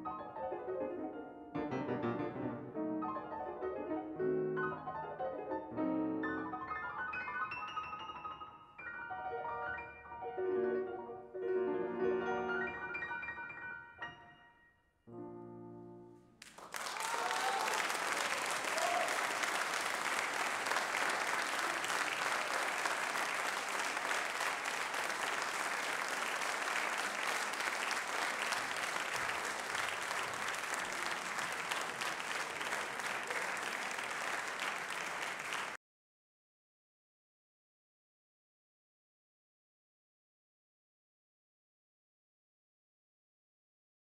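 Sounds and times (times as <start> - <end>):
piano chord: 0.2 - 6.7
audience applause: 16.4 - 35.8.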